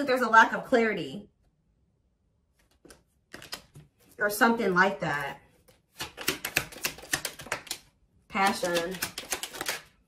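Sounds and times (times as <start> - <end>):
cards being shuffled: 2.6 - 4.2, 5.2 - 10.0.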